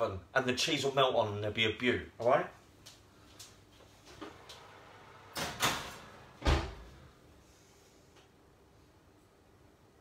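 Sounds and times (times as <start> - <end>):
oven door shutting thud: 5.3 - 7.0.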